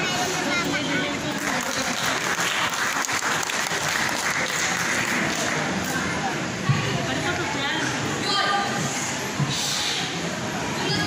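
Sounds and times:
audience applauding: 0:01.2 - 0:06.0.

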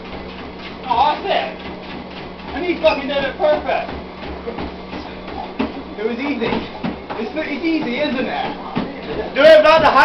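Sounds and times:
feet thudding on treadmill belt: 0:00.0 - 0:10.0
treadmill motor and belt hum: 0:00.0 - 0:10.0.

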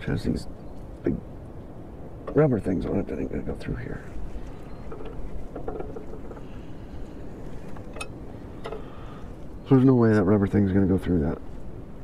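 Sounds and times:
wind rumbling on microphone: 0:00.0 - 0:12.0
clicks and rustles of wires: 0:04.1 - 0:09.6.

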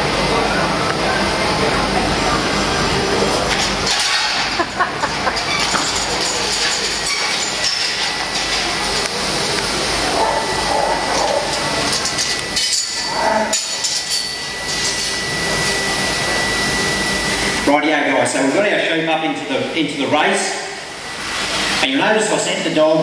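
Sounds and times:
steady high tone: 0:00.0 - 0:22.8
noisy hall background: 0:00.0 - 0:23.0.

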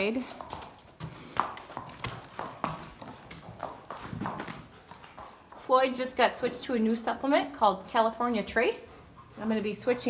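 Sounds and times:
horse hooves knocking on floor: 0:00.0 - 0:06.5.

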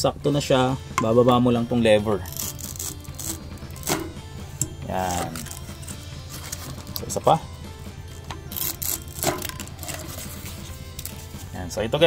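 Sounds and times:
background music: 0:00.0 - 0:12.0
die cutter lever clunk: 0:03.8 - 0:04.8.

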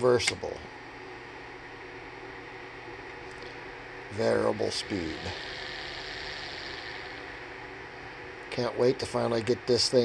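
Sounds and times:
electric motor humming: 0:00.8 - 0:10.0.

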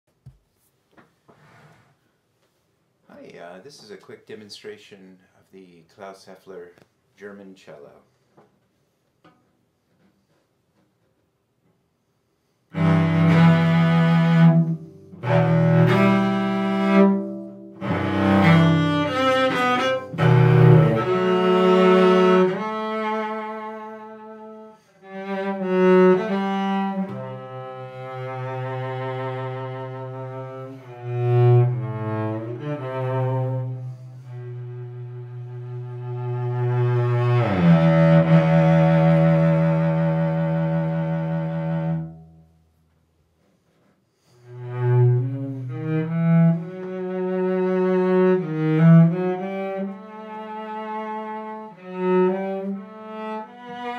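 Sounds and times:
bowed cello: 0:12.7 - 0:42.5, 0:44.2 - 0:53.9.

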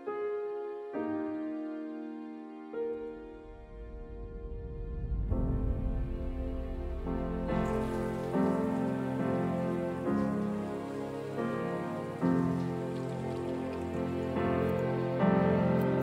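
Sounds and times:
soft instrumental music: 0:00.0 - 0:16.0
shower spray hissing: 0:06.7 - 0:14.7.

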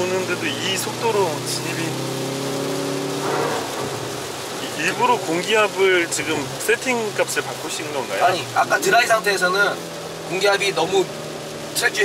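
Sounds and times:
car engine at speed: 0:00.0 - 0:12.0
rain: 0:00.0 - 0:12.0
tyres hissing on wet road: 0:00.0 - 0:12.0.

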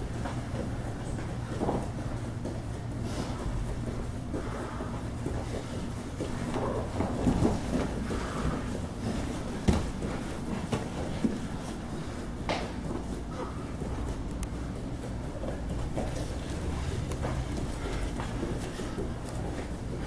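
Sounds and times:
bodies scuffling on gym mat: 0:00.1 - 0:20.0
low background rumble: 0:13.4 - 0:20.0.

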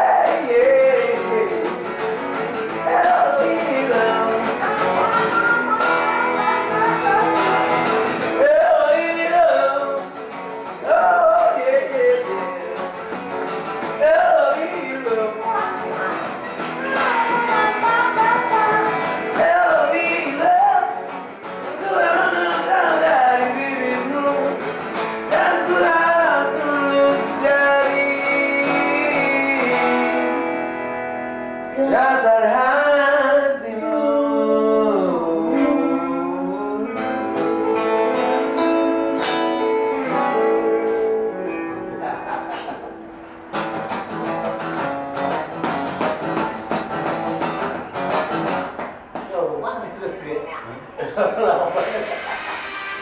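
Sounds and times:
man singing: 0:00.0 - 0:13.2, 0:13.8 - 0:30.5, 0:31.6 - 0:42.4
acoustic guitar strumming: 0:00.0 - 0:49.2, 0:51.4 - 0:53.0
electric guitar: 0:00.0 - 0:49.3, 0:51.6 - 0:53.0.

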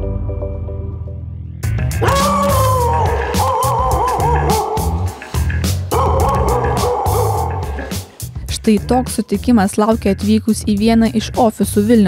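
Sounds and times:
background music with steady beat: 0:00.0 - 0:12.0
dog howling: 0:02.0 - 0:05.2, 0:05.9 - 0:08.0.

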